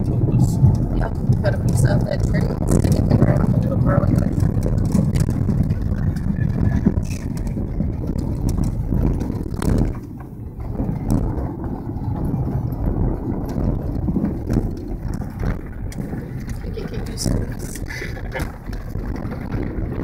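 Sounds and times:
car rumbling on dirt road: 0.0s - 20.0s
knocks and rattles from bumps: 0.0s - 20.0s.

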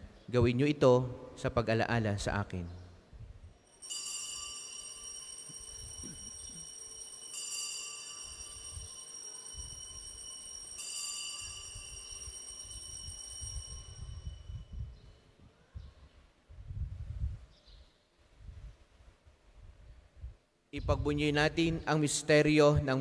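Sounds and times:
altar bells ringing: 3.6s - 15.0s.

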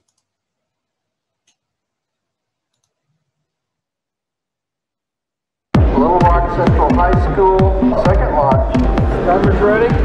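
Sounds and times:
soft clicks: 0.0s - 0.4s, 1.4s - 1.7s, 2.6s - 3.6s.

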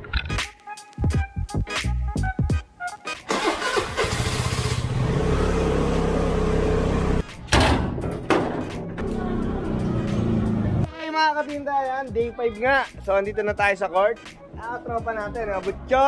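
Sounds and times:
sharp knocks: 7.5s - 9.0s.

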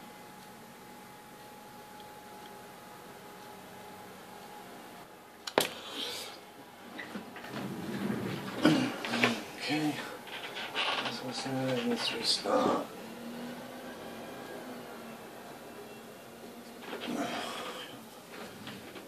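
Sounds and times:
faint steady hum: 0.0s - 19.0s
low wordless muttering: 11.0s - 13.1s.

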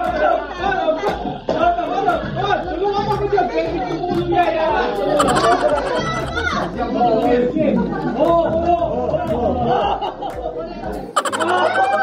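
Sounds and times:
overlapping group chatter: 0.0s - 12.0s.

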